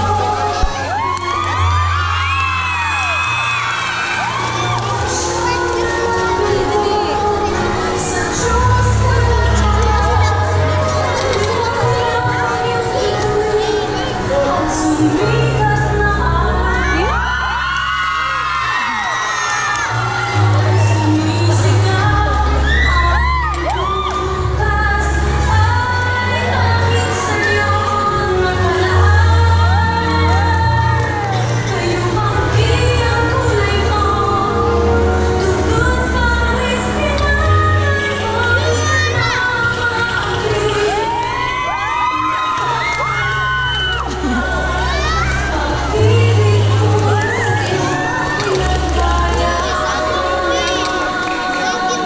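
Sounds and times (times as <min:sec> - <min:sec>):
children shouting and cheering: 0:00.0 - 0:34.6, 0:35.7 - 0:52.0.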